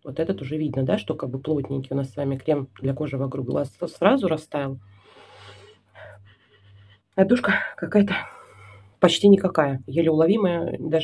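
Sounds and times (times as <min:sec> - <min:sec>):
woman sniffing: 0:05.0 - 0:06.8.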